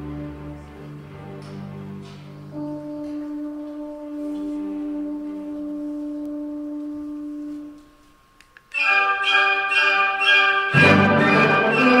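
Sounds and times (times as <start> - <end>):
held woodwind note: 2.5 - 8.1, 8.7 - 12.0.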